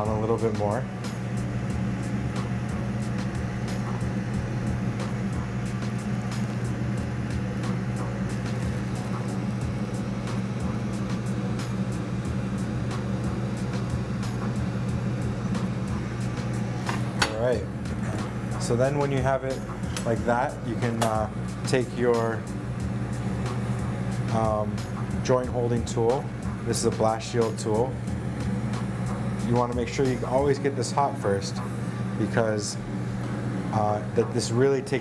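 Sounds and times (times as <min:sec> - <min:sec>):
low drone: 0:00.0 - 0:34.6
background music: 0:00.0 - 0:35.0.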